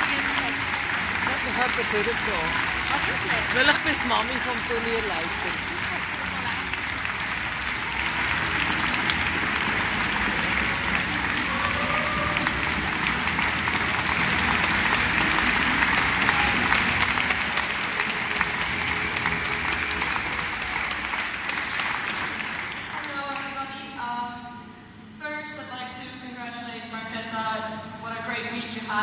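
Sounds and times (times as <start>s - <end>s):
audience applauding: 0.0s - 23.6s.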